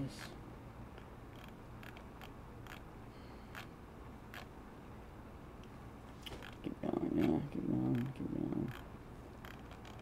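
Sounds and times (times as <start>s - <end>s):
low steady room hum: 0.0s - 10.0s.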